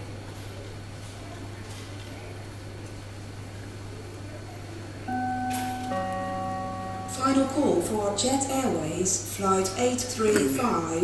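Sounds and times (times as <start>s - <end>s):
two-tone public-address chime: 5.1s - 8.9s.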